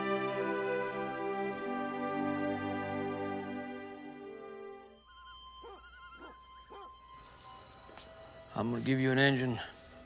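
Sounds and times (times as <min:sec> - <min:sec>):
faint wavering call: 0:04.9 - 0:08.5.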